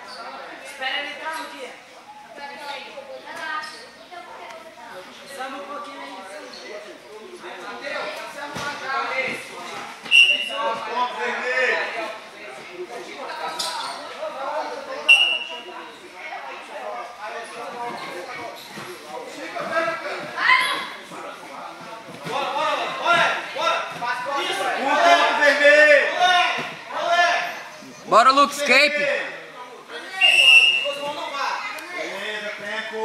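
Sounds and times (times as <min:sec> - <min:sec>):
referee's whistle blast: 0:10.1 - 0:10.6, 0:30.2 - 0:30.9.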